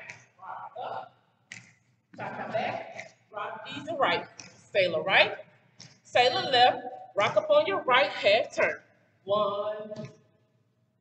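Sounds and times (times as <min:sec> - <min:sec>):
person talking: 0:02.2 - 0:05.4, 0:06.1 - 0:10.1.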